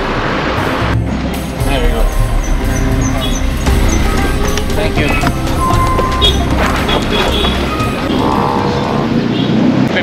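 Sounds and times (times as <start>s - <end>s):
street traffic noise: 0.0s - 10.0s.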